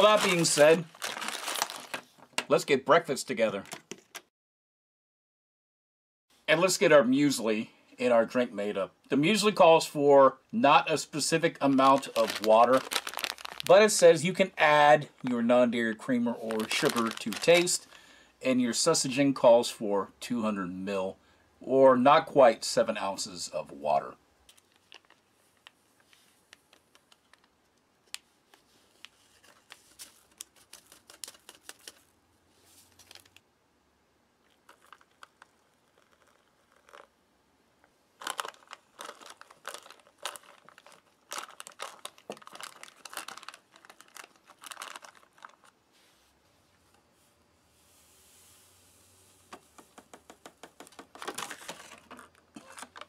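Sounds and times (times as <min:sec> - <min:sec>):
foil pouch crinkling: 0:00.0 - 0:02.4, 0:11.6 - 0:14.2, 0:16.1 - 0:18.0, 0:24.5 - 0:27.6, 0:29.3 - 0:32.1, 0:32.8 - 0:33.4, 0:34.4 - 0:37.1, 0:38.2 - 0:45.8, 0:50.9 - 0:53.0
spoon stirring dry cereal: 0:34.6 - 0:37.1.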